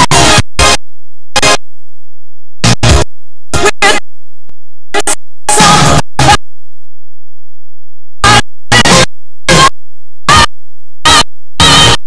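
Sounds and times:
harsh digital noise bursts: 0:08.2 - 0:09.7, 0:10.3 - 0:12.0.

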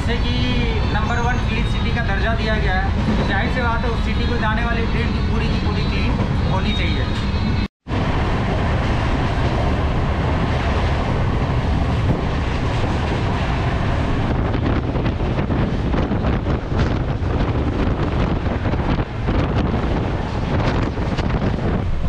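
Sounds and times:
train wheels rumbling on rails: 0:00.0 - 0:22.0
rushing air: 0:07.8 - 0:22.0.

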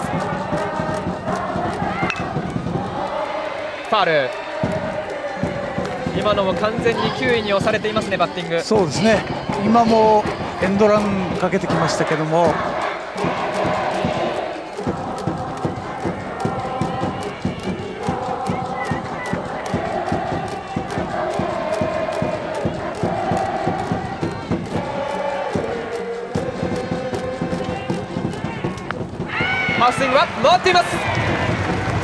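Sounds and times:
crowd chanting: 0:00.0 - 0:32.0
quick drumbeat: 0:00.0 - 0:32.0.

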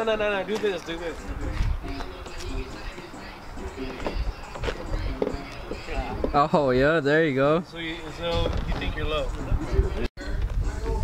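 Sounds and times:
faint voices talking: 0:00.0 - 0:06.5.

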